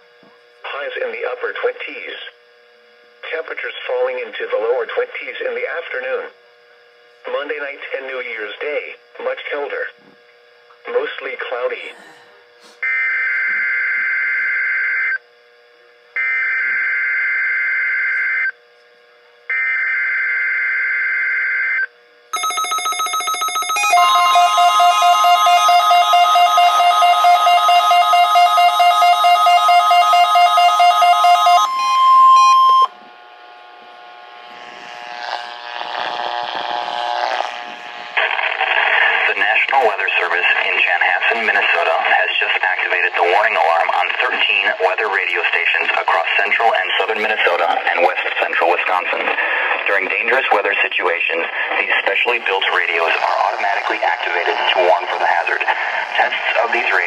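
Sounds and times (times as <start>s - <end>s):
steady warning alarm tone: 19.5s - 33.0s
buzzing digital header bursts: 23.4s - 32.9s.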